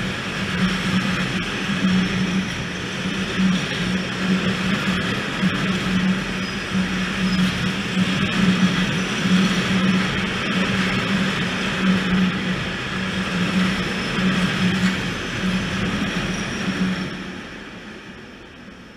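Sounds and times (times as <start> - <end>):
freight train passing: 0.0 - 18.9.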